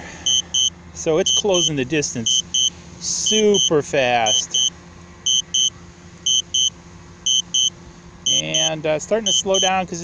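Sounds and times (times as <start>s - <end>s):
high double beep warning: 0.2s - 9.8s.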